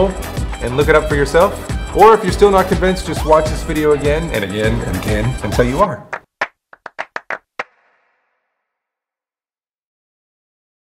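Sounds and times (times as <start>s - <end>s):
quick sharp percussive taps: 6.1s - 8.0s.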